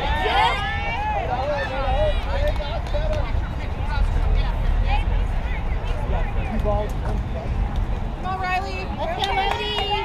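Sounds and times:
steady low rumble: 0.0s - 10.0s.

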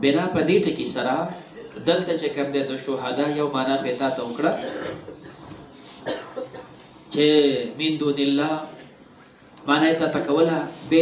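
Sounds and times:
man speaking: 0.0s - 5.0s, 7.1s - 8.8s, 9.6s - 11.0s
man coughing: 1.3s - 1.9s, 3.7s - 6.8s.

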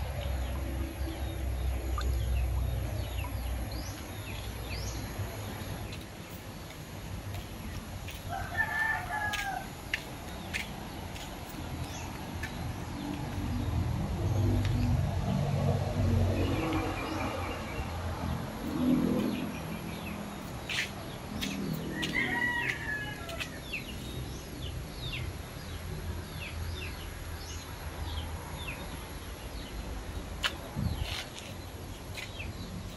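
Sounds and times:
small birds chirping: 0.0s - 14.9s, 16.4s - 32.9s.

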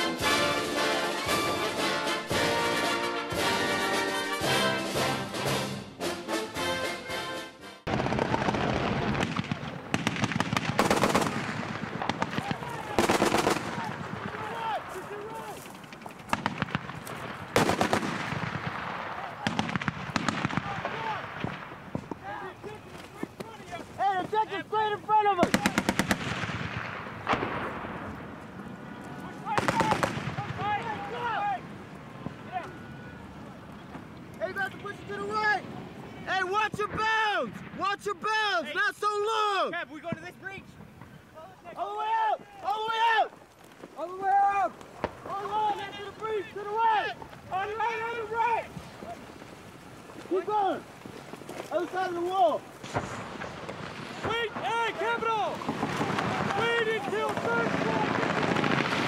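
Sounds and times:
automatic gunfire: 7.9s - 14.3s, 17.6s - 21.1s
people shouting: 12.3s - 15.6s, 20.5s - 21.3s, 28.9s - 31.7s, 32.4s - 33.7s, 41.4s - 43.3s, 44.0s - 49.3s, 54.2s - 58.2s.

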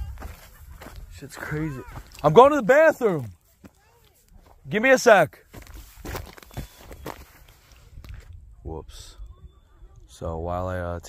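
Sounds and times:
footsteps on trail: 0.0s - 8.3s.

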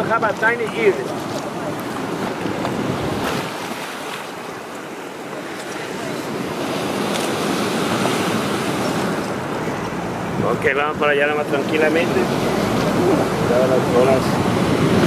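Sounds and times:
wind on microphone: 1.1s - 10.6s, 11.7s - 15.0s.

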